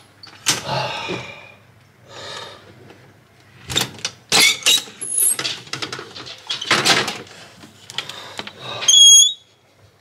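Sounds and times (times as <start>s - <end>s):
hinge squeal: 8.9s - 9.5s.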